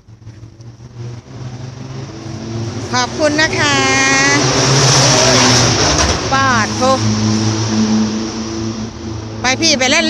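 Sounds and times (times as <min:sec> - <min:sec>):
vehicle engine hum: 0:00.0 - 0:10.0
loud rush of noise: 0:01.5 - 0:09.6.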